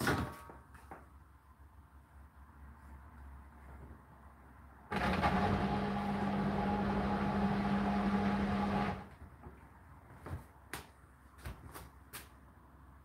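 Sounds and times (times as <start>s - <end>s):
washing machine running: 4.9s - 9.1s.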